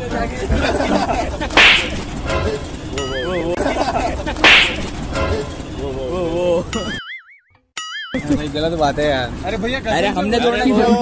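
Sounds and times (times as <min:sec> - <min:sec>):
whip-crack sound effects: 0:01.5 - 0:02.1, 0:04.4 - 0:04.9
warbling comedic tone: 0:06.8 - 0:08.3.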